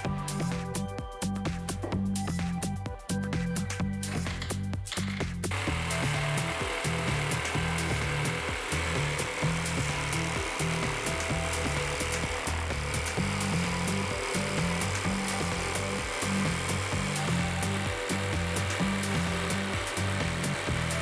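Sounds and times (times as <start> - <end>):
jigsaw cutting plywood: 5.5 - 21.0.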